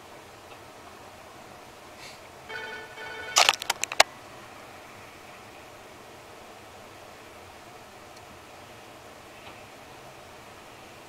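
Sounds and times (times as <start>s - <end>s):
sharp clicks and knocks: 3.4s - 4.0s.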